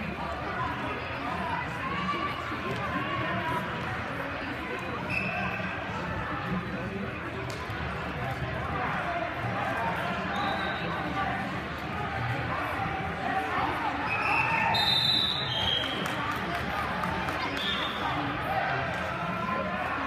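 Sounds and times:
murmur of voices: 0.0s - 20.0s.

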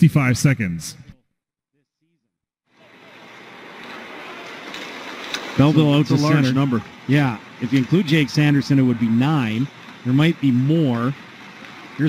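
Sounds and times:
skates and sticks on ice: 3.0s - 6.1s.

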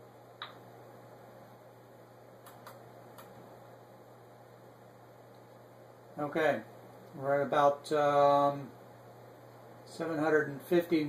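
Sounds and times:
low steady hum: 0.0s - 11.0s
faint light clicks: 2.4s - 3.4s.

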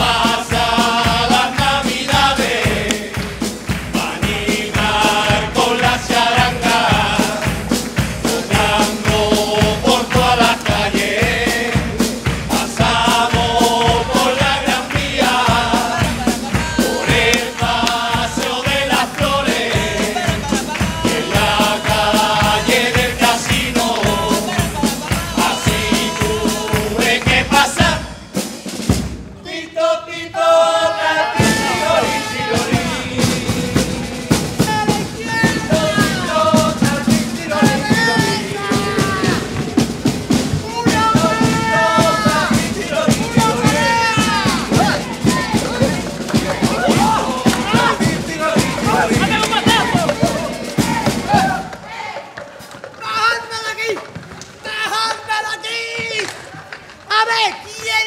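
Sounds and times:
bass drum and snare beat: 0.0s - 29.4s, 30.4s - 54.2s
chorus of voices singing: 0.0s - 52.7s.

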